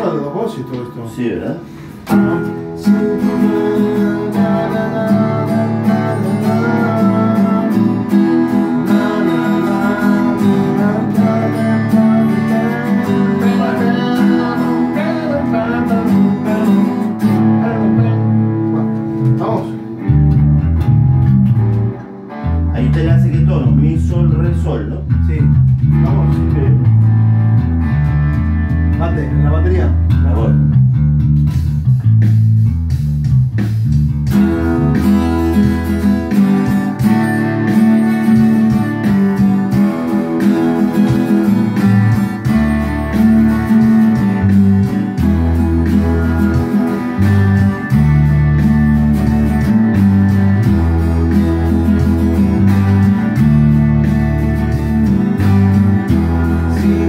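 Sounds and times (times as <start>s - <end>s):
bass guitar deep notes: 0.0s - 57.0s
electric guitars playing: 0.0s - 57.0s.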